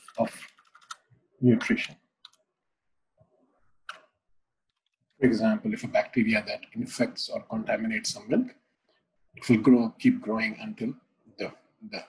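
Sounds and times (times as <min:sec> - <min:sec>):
computer keyboard keystrokes: 0:00.0 - 0:01.0.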